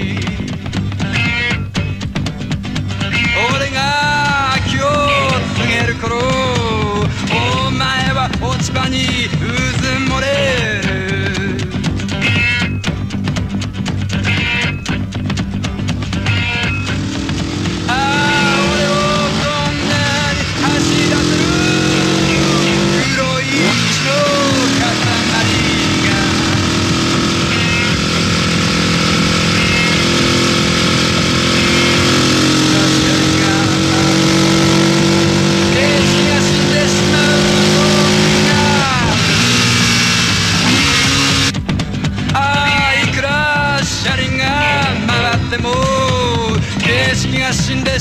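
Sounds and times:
motorcycle engines revving: 0.0s - 48.0s
voices calling out: 2.8s - 12.8s, 16.1s - 41.5s.

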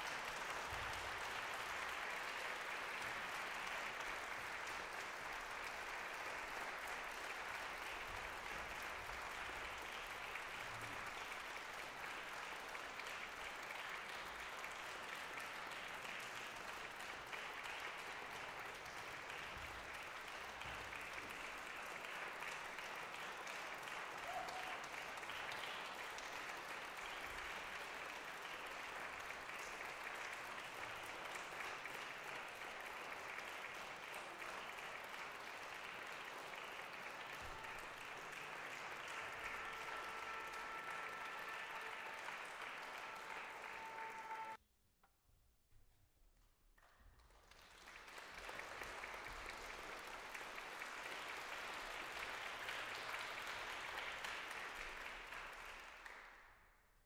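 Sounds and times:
audience applauding: 0.0s - 44.6s, 47.2s - 56.4s.

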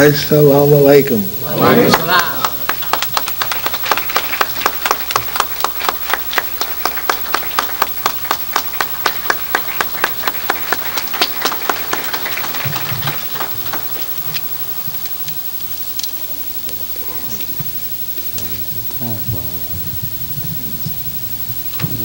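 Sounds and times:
audience clapping in unison: 1.6s - 14.6s.

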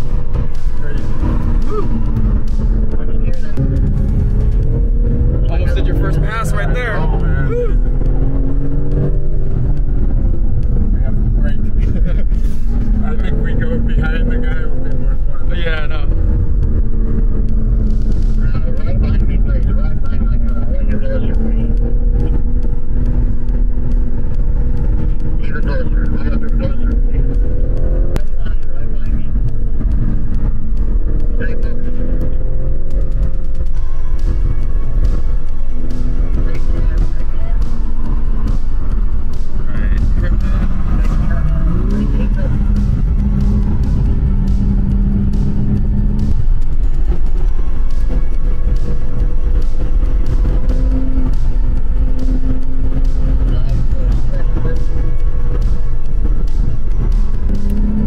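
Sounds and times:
background music: 0.0s - 58.0s
car engine revving: 0.0s - 58.0s
road rumble: 0.0s - 58.0s.

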